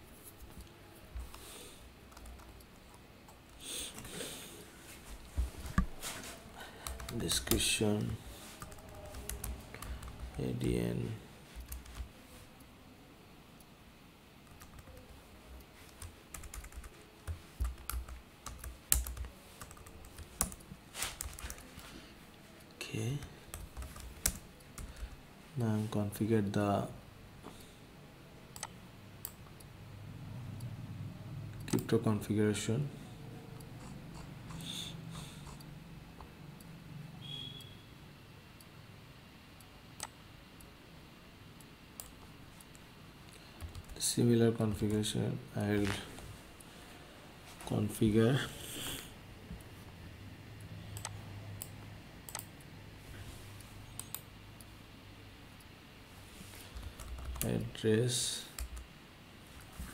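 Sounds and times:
computer keyboard typing: 1.2s - 4.2s, 6.8s - 10.6s, 11.6s - 12.2s, 14.4s - 15.2s, 15.8s - 21.9s, 23.1s - 25.2s, 43.6s - 44.1s, 56.7s - 57.6s
keyboard and mouse clicks: 28.6s - 29.6s, 31.6s - 31.9s, 42.0s - 44.0s, 51.0s - 52.6s, 53.9s - 54.3s.

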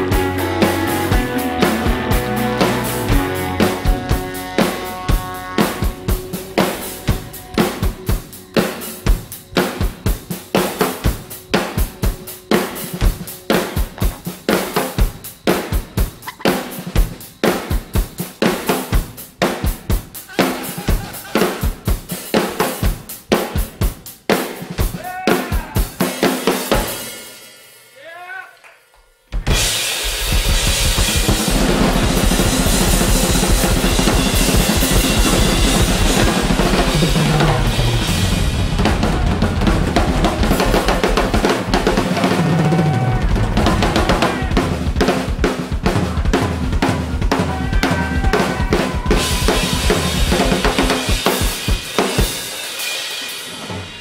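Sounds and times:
cymbals crashing: 0.0s - 19.2s, 29.5s - 45.3s, 47.2s - 54.0s
drum kits playing: 0.0s - 28.2s, 29.0s - 54.0s.

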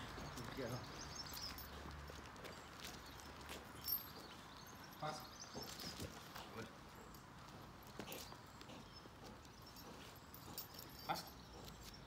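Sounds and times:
footsteps on brick paving: 0.0s - 12.0s.

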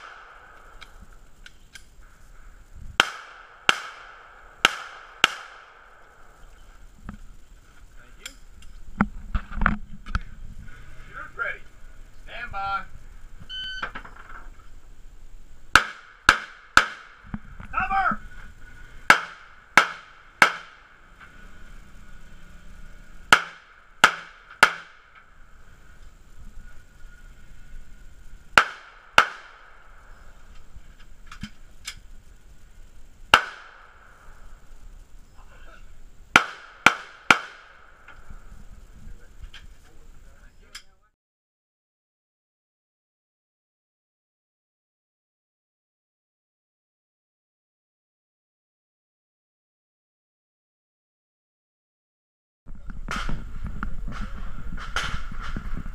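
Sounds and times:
handgun shots: 3.0s - 5.7s, 28.6s - 29.7s, 33.3s - 33.8s, 36.4s - 37.8s
shot timer beep: 13.5s - 13.9s.

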